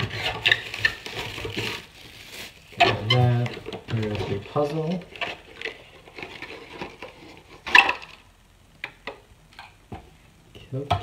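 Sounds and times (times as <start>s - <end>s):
plastic bag rustling: 0.0s - 8.2s.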